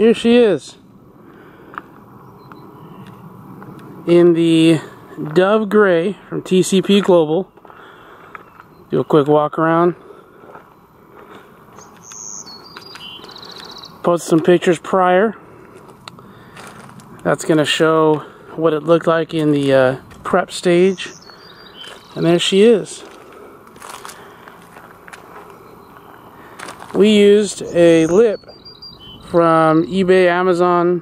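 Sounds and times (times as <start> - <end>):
faint outdoor background noise: 0.0 - 31.0
insects humming: 0.0 - 31.0
songbird singing: 0.0 - 31.0
footsteps on gravel: 1.4 - 4.0, 4.7 - 14.7, 15.5 - 28.7.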